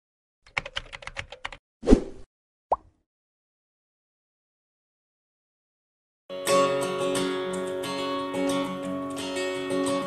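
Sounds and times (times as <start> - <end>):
rapid keyboard typing: 0.5 - 1.6.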